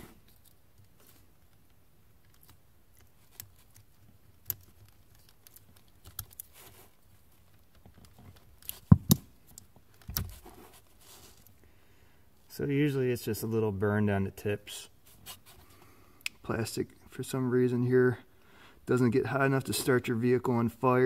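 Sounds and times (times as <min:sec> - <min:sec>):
small plastic clicks and scrapes: 0:00.2 - 0:10.5.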